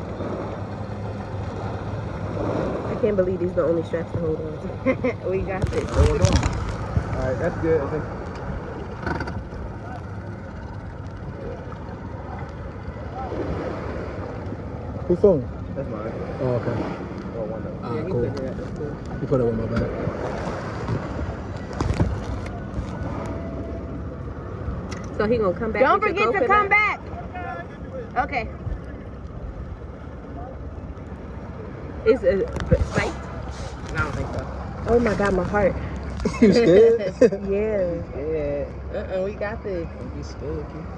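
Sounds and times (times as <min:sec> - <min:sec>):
motorboat engine rumble: 0:00.0 - 0:40.9
wind: 0:00.0 - 0:40.9
faint voices: 0:02.8 - 0:37.0.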